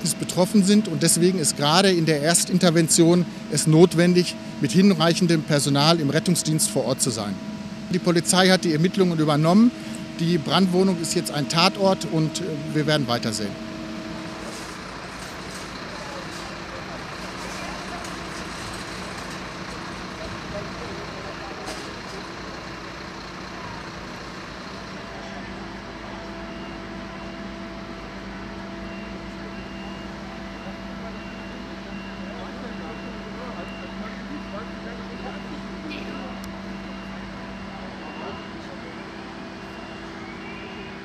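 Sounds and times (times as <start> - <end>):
fire engine diesel engine droning: 0.0 - 41.0
faint high beep: 28.8 - 41.0.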